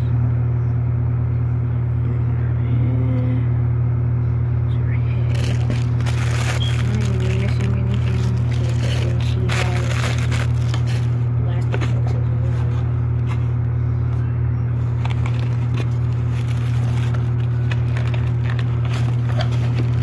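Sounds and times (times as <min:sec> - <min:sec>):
loud steady low hum: 0:00.0 - 0:20.0
plastic wrapping crinkling: 0:05.3 - 0:11.2, 0:15.0 - 0:20.0.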